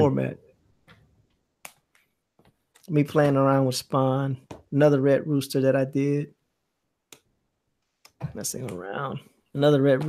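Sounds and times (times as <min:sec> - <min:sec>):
man speaking: 0:00.0 - 0:00.5, 0:02.8 - 0:06.4, 0:08.1 - 0:10.0.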